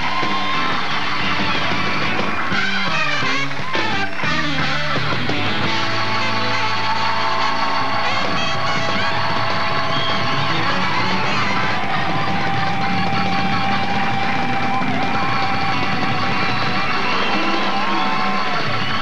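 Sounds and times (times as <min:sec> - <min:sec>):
live rock band playing: 0:00.0 - 0:19.0.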